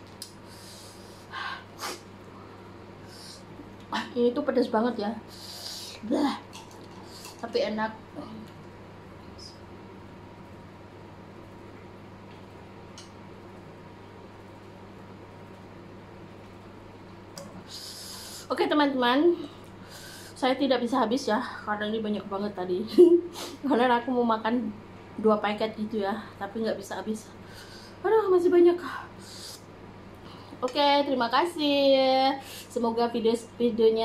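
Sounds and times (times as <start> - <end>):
steady low hum: 0.0 - 34.0.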